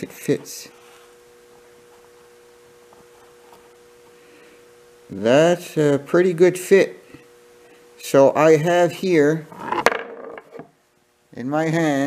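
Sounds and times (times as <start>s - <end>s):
faint room hiss: 0.0s - 12.0s
steady two-tone hum: 0.0s - 12.0s.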